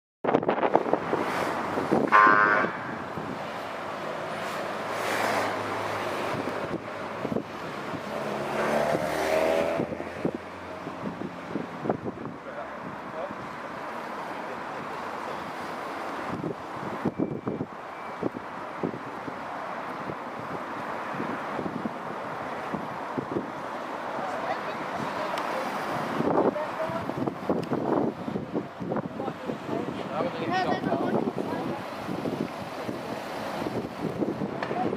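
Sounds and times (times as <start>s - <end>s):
motorcycle engines passing: 0.9s - 19.1s.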